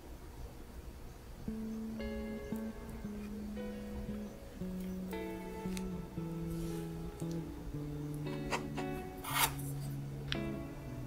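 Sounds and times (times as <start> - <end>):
background guitar music: 1.4 - 11.0
knife cutting onto wooden board: 9.2 - 9.6
knife rasping scrape: 9.2 - 9.8.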